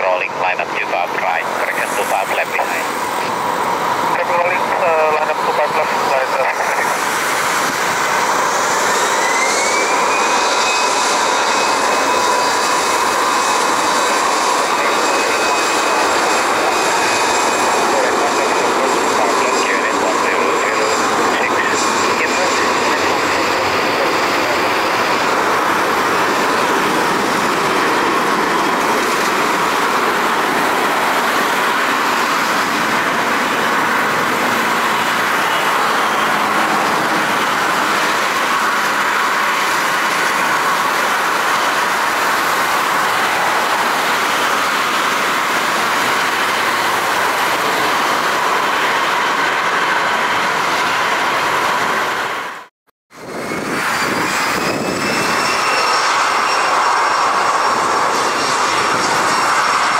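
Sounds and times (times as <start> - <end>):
jet engines spooling up: 0.0 - 59.9.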